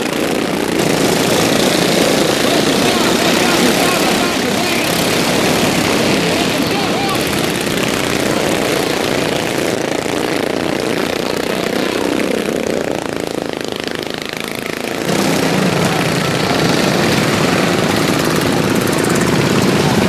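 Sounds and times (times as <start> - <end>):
racing lawnmower engines: 0.0 - 20.0.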